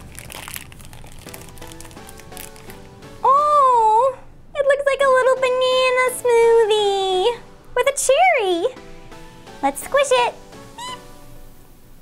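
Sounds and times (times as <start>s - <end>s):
paper wrapper tearing and crinkling: 0.0s - 3.0s
quiet background music: 0.0s - 12.0s
person saying ooh: 3.2s - 4.2s.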